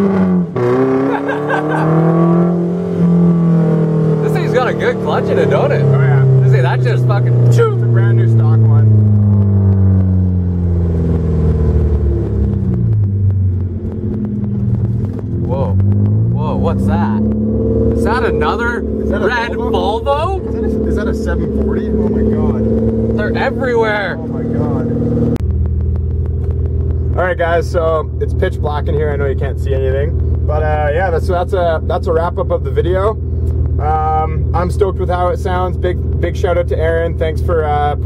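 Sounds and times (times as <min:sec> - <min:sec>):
car engine while driving: 0:00.0 - 0:38.0.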